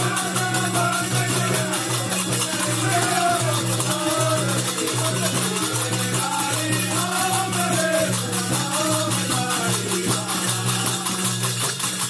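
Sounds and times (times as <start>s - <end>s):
folk song singing: 0.0s - 11.6s
drum beating: 0.0s - 12.0s
hands clapping in rhythm: 0.0s - 12.0s.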